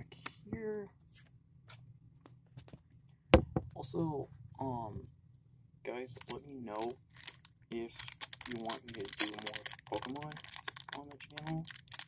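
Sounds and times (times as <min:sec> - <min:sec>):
faint low hum: 0:00.0 - 0:12.0
clicks and rustles of handling: 0:06.2 - 0:12.0.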